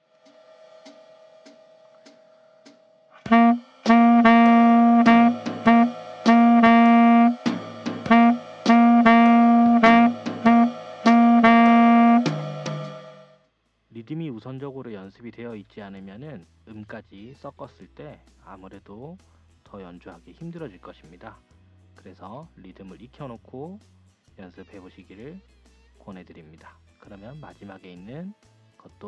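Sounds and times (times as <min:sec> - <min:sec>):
tenor saxophone playing: 0:03.3 - 0:13.2.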